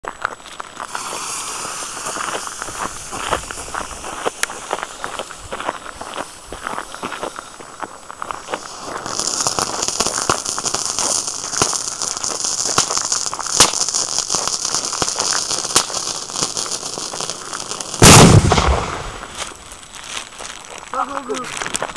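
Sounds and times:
crackles: 0:00.0 - 0:21.9
firecracker fuse hissing: 0:00.1 - 0:21.9
loud firecracker bang: 0:18.0 - 0:19.6.

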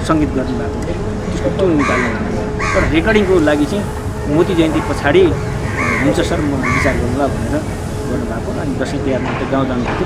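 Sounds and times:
man speaking: 0:00.0 - 0:10.0
crow cawing: 0:01.6 - 0:03.0, 0:04.8 - 0:07.4.

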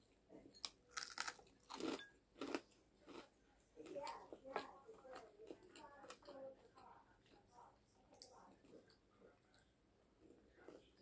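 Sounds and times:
chewing: 0:00.6 - 0:11.0
crunchy bite into fried chicken: 0:01.0 - 0:03.2.

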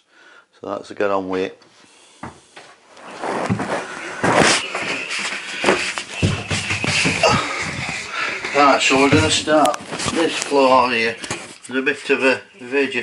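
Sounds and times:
rustling handling noise: 0:03.0 - 0:11.8
knocks and thumps: 0:03.4 - 0:10.3.

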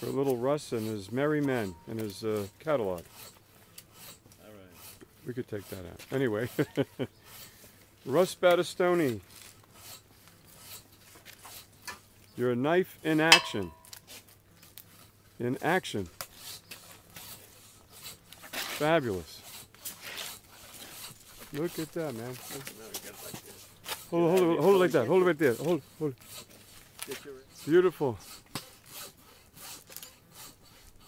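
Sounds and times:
knife scraping hide: 0:00.0 - 0:07.6, 0:09.0 - 0:11.8, 0:13.1 - 0:15.1, 0:16.2 - 0:31.0.

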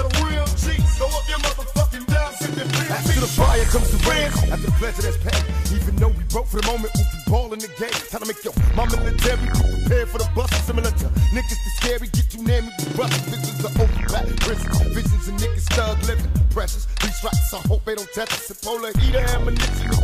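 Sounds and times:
rapping over a beat: 0:00.0 - 0:20.0.

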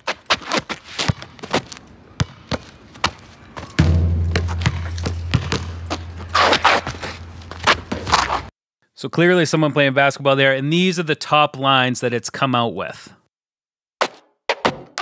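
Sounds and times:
players' footsteps: 0:00.0 - 0:08.5
basketball bouncing: 0:01.0 - 0:01.5, 0:02.2 - 0:08.3
low hum: 0:03.8 - 0:08.0.

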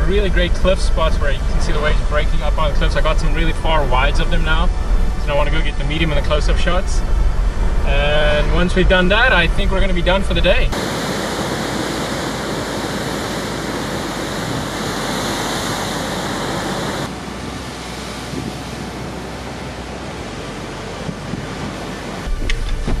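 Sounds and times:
surf breaking over rocks: 0:10.7 - 0:23.0.

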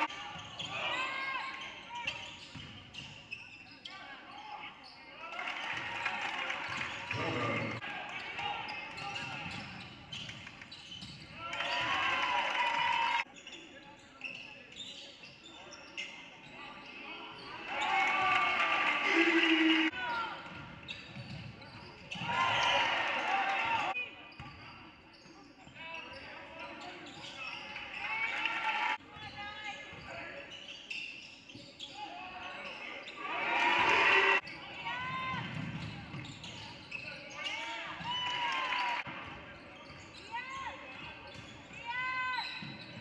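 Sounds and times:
voices of players and spectators: 0:00.0 - 0:43.0.

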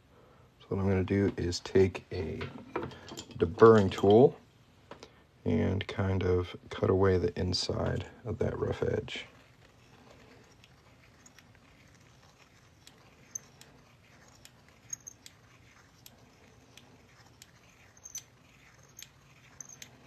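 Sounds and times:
blade scraping metal coin edge: 0:09.8 - 0:20.0.

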